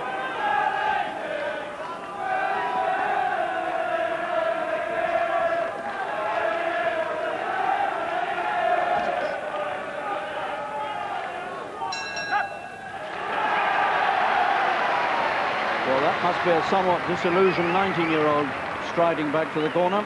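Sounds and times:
crowd chanting and shouting: 0.0s - 20.0s.

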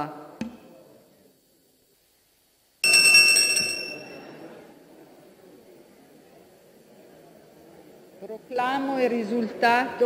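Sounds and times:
bell ringing sharply: 2.8s - 4.4s
murmur of crowd: 3.3s - 10.0s.

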